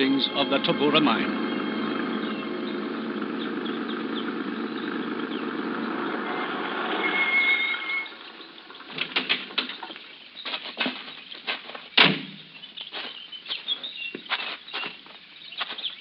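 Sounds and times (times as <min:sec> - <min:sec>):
truck engine running: 0:00.0 - 0:10.4
brake squeal: 0:06.1 - 0:08.3.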